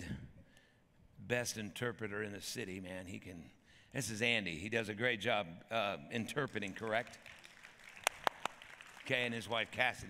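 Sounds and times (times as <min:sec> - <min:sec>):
faint audience applause: 0:06.6 - 0:10.0
sharp hand claps close by: 0:07.2 - 0:09.1.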